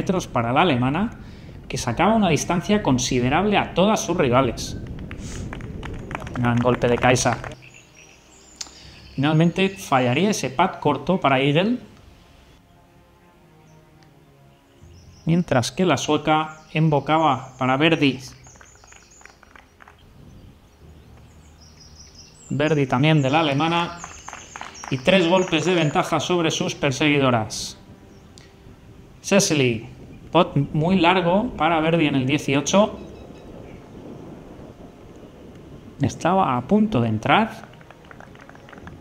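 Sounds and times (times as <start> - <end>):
low rumble: 0.0 - 9.2, 17.4 - 39.0
faint hiss: 4.6 - 6.7, 7.5 - 9.5
small birds chirping: 4.7 - 10.6, 13.6 - 27.2, 32.0 - 36.0.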